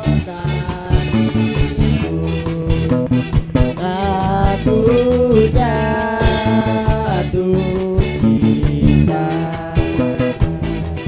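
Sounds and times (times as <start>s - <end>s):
drum kit beating: 0.0s - 11.0s
electric guitar held notes: 0.0s - 11.0s.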